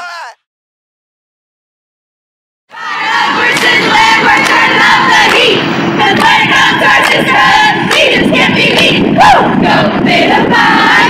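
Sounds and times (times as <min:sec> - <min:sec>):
young women chanting: 0:02.7 - 0:11.0.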